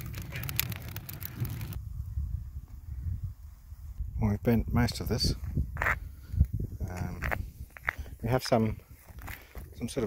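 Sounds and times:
fire crackling: 0.0 - 4.1.

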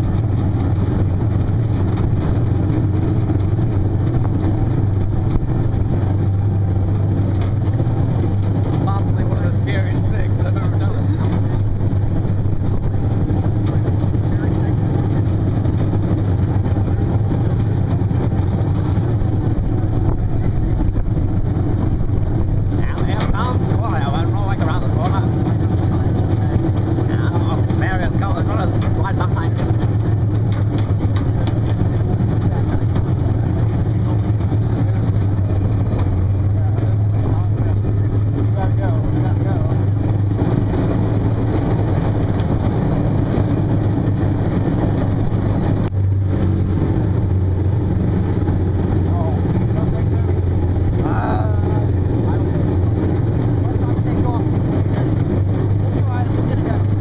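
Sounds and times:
loud low hum: 0.0 - 57.0.

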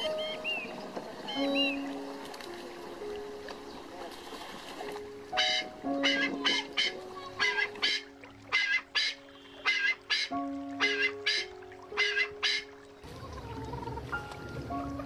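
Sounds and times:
bird calling: 0.0 - 1.9, 5.4 - 14.3
background music of held notes: 0.0 - 15.0.

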